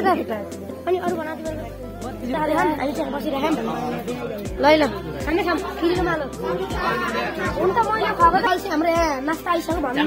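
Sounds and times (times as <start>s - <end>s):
background music with beat: 0.0s - 10.0s
voices chattering: 0.0s - 10.0s.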